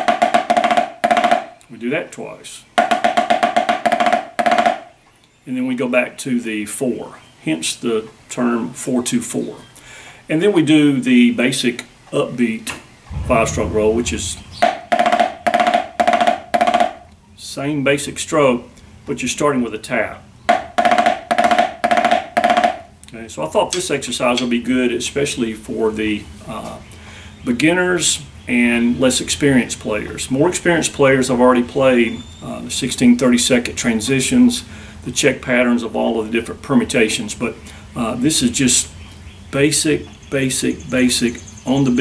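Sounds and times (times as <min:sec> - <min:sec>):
snare drum rolls: 0:13.1 - 0:17.0.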